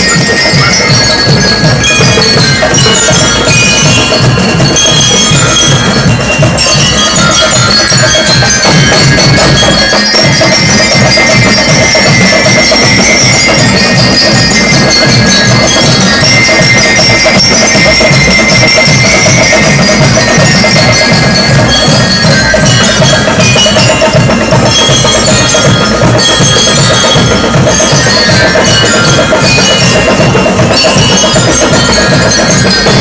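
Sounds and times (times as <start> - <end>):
bell lyres melody: 0.0 - 33.0
cymbals: 0.0 - 33.0
snare and bass drums: 0.0 - 33.0.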